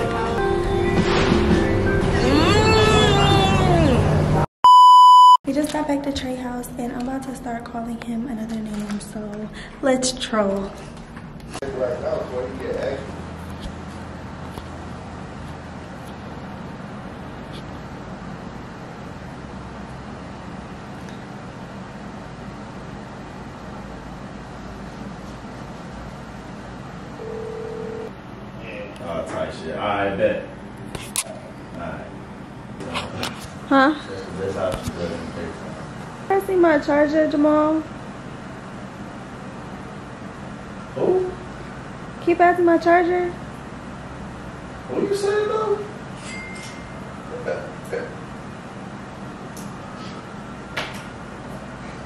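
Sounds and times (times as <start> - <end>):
background music: 0.0 - 2.9
electronic bleep: 4.6 - 5.4
steady beep tone: 4.6 - 5.4
woman talking: 5.5 - 10.9, 33.7 - 34.1, 36.3 - 37.9, 42.2 - 43.4
room hiss and hum: 5.5 - 52.0.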